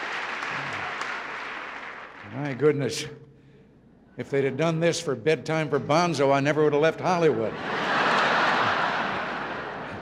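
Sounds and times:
audience applauding: 0.0 - 2.6
audience laughing: 7.3 - 10.0.

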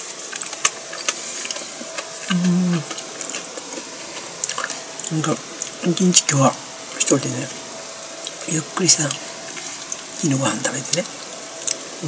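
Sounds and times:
person chewing food: 0.0 - 5.8, 8.2 - 8.4, 9.1 - 10.2, 11.2 - 11.9
closed-mouth hum: 0.0 - 12.0.

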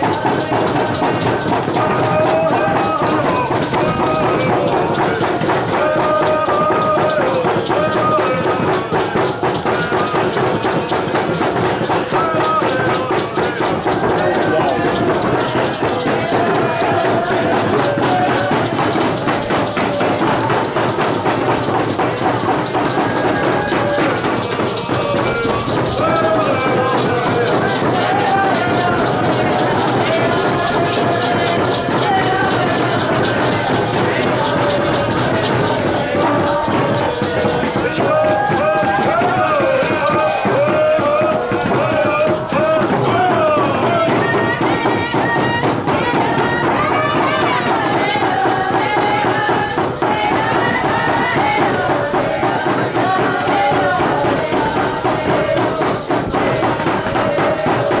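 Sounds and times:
fast percussion: 0.0 - 58.0
group of voices singing: 0.0 - 58.0.

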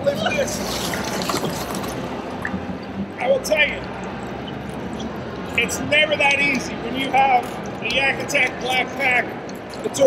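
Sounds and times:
water splashing and sloshing: 0.3 - 5.6.

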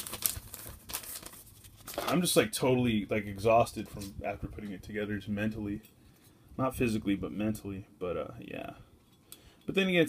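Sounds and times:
paper rustling and crinkling: 0.0 - 2.4.

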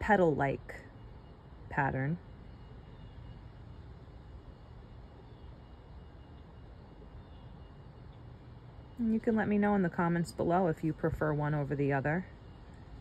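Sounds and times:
faint outdoor background rumble: 0.0 - 13.0.

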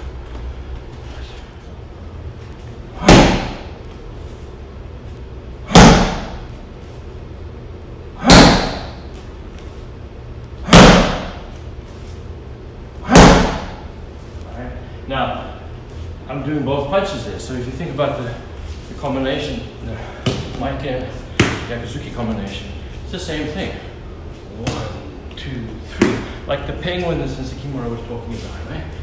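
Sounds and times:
punches smacking a padded pad: 3.0 - 3.7, 5.7 - 6.5, 8.2 - 9.0, 10.6 - 11.5, 13.0 - 13.9, 20.2 - 20.6, 21.3 - 21.7, 26.0 - 26.4.

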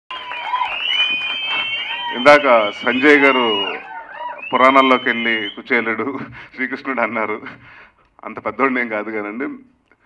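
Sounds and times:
audience cheering: 0.1 - 5.6.

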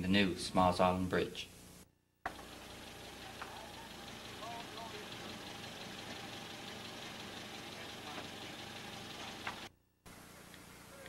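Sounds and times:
outdoor background noise: 1.7 - 11.0
engine idling: 2.3 - 9.7.

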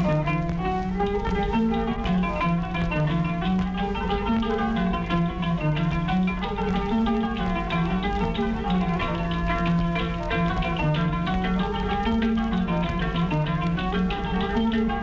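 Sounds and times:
plucked string ensemble music: 0.0 - 15.0.

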